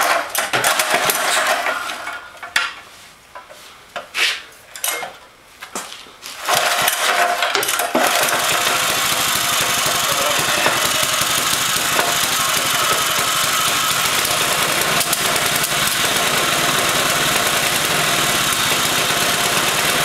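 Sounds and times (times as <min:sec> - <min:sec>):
small engine idling: 0:06.5 - 0:20.0.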